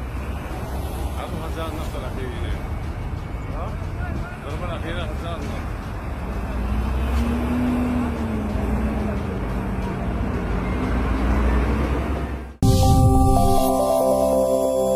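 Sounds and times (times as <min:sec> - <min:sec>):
traffic rumble: 0:00.0 - 0:12.6
electronic music: 0:12.6 - 0:14.9.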